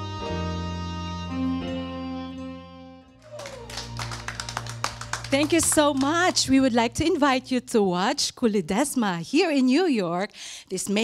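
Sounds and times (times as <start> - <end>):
small group applauding: 3.2 - 6.5.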